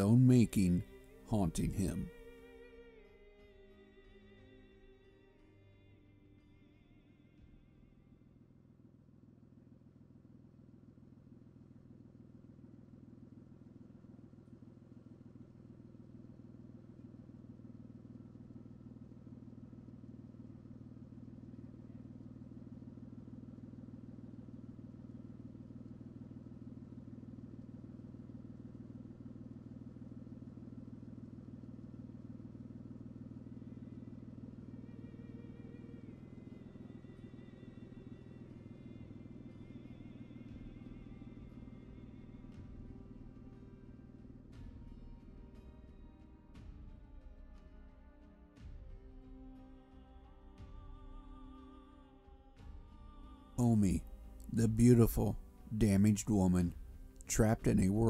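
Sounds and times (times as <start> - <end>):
low steady rumble: 0.0 - 5.1, 5.8 - 58.0
faint music: 0.0 - 58.0.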